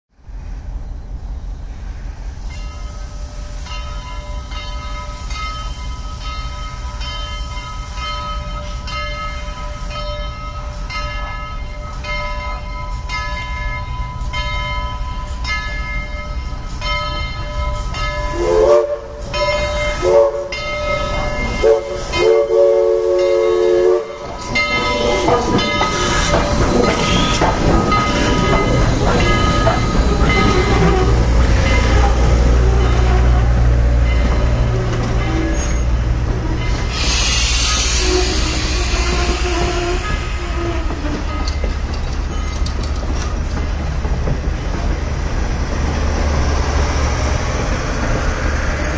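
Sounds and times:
steam locomotive rumbling: 0.1 - 48.9
locomotive bell ringing: 2.5 - 38.9, 39.5 - 45.4
steam chime whistle: 17.8 - 33.4, 35.1 - 41.6.

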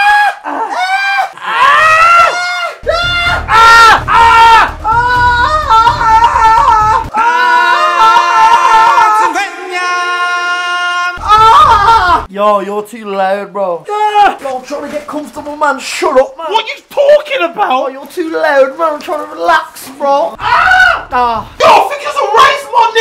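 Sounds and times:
men screaming in pain: 0.0 - 12.3, 20.4 - 22.6.

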